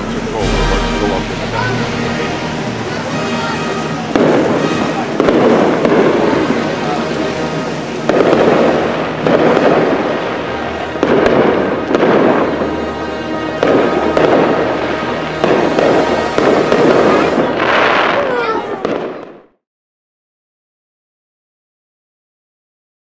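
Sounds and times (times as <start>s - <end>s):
fireworks booming with echo: 0.0s - 19.6s
fireworks crackling with whistles: 0.0s - 19.6s.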